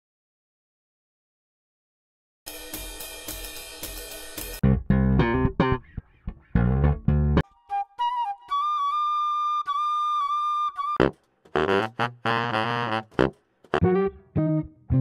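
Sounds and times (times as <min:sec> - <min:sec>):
drum kit fill: 0:02.5 - 0:04.6
choppy bass groove: 0:04.6 - 0:07.4
held flute notes: 0:07.4 - 0:13.8.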